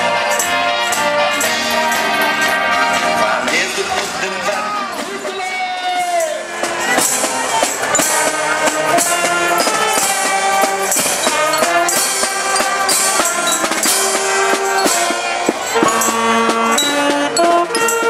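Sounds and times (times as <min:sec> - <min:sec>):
trumpets: 0:00.0 - 0:18.0
saxophone: 0:06.6 - 0:18.0
snare drum: 0:06.6 - 0:18.0
bass drum: 0:13.3 - 0:17.7
sousaphone: 0:14.8 - 0:17.8.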